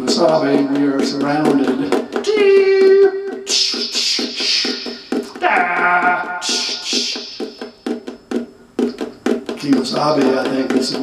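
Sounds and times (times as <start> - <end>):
steady hiss: 0.0 - 5.4, 6.1 - 11.0
tapping on ukulele body: 0.0 - 6.7, 7.3 - 11.0.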